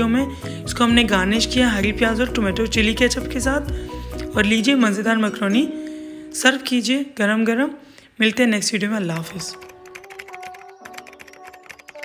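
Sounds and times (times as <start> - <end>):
background music with held notes: 0.0 - 6.9, 9.2 - 12.0.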